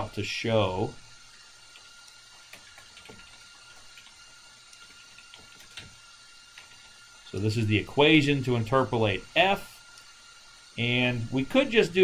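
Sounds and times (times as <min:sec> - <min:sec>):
thin constant tone: 0:00.0 - 0:12.0.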